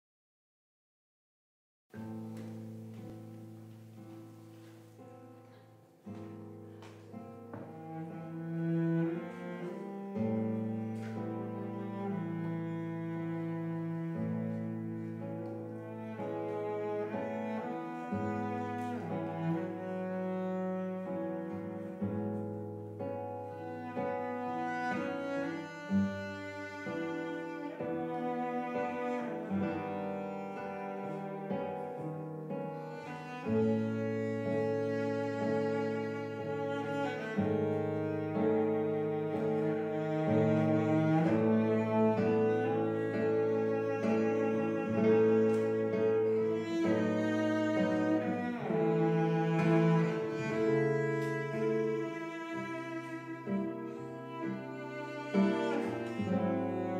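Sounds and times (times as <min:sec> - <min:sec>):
acoustic guitar: 0:02.0 - 0:56.9
bowed cello: 0:02.0 - 0:56.9.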